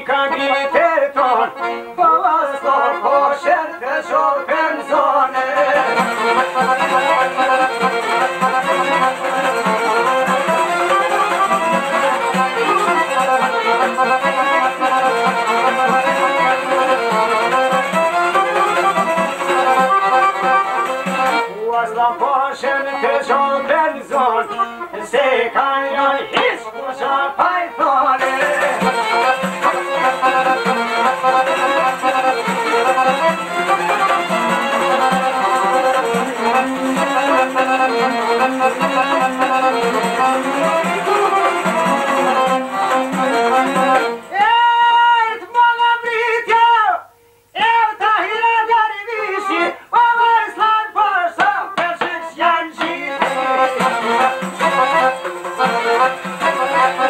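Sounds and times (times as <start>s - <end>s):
lute folk instrumental: 0.0s - 46.4s, 51.5s - 57.0s.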